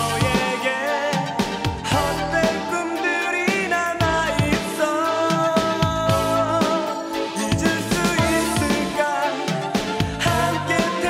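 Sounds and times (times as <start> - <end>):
man singing: 0.0 - 11.0
steady drum beat: 0.0 - 11.0.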